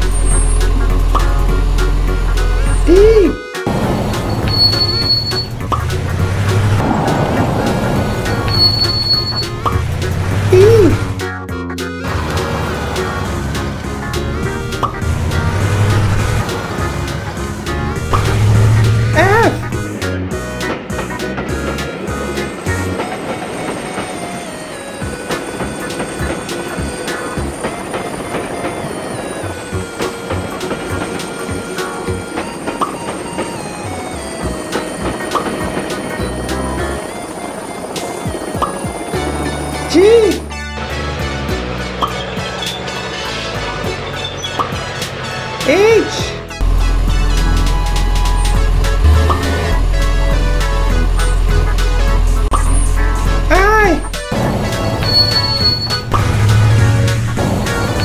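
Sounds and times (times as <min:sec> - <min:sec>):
background music with steady beat: 0:00.0 - 0:06.8, 0:08.0 - 0:24.1, 0:29.1 - 0:58.0.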